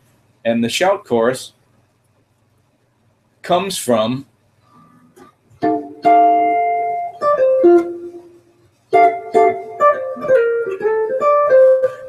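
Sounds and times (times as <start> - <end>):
jazz guitar chord melody: 5.6 - 12.0.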